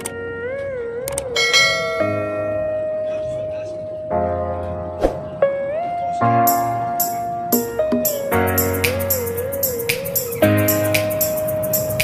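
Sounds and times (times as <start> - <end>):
bright bell chime: 1.4 - 2.6
steady musical notes: 5.3 - 12.0.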